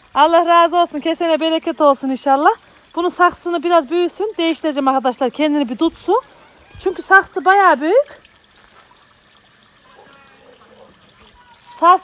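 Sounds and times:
faint water trickle: 0:00.0 - 0:12.0.

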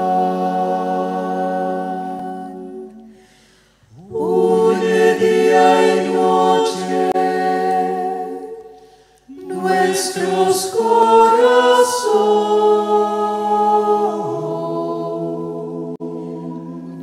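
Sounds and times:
voices singing a hymn: 0:00.0 - 0:17.0.

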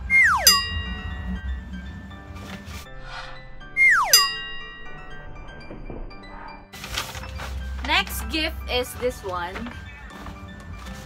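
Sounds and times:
falling whistle glide: 0:00.0 - 0:00.9, 0:03.8 - 0:04.4
light background music: 0:00.0 - 0:11.0
bright ringing chime: 0:00.2 - 0:02.2, 0:03.7 - 0:05.6.

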